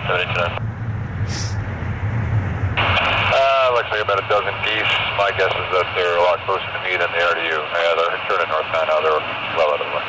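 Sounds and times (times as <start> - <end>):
air traffic control radio voice: 0.0 - 0.6, 2.8 - 10.0
low rumble: 0.0 - 6.8.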